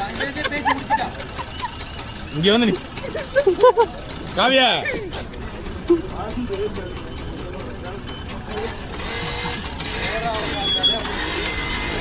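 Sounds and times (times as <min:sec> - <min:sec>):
people talking: 0:00.0 - 0:01.4, 0:02.3 - 0:08.9, 0:09.9 - 0:11.5.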